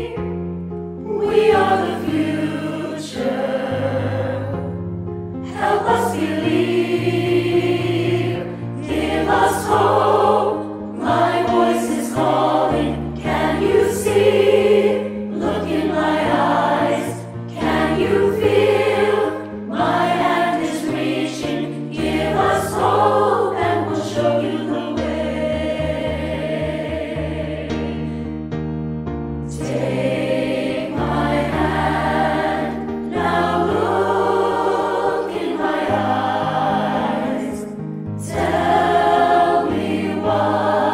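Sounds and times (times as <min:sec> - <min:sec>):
choir singing: 0:00.0 - 0:00.4, 0:01.0 - 0:04.8, 0:05.4 - 0:28.2, 0:29.5 - 0:40.9.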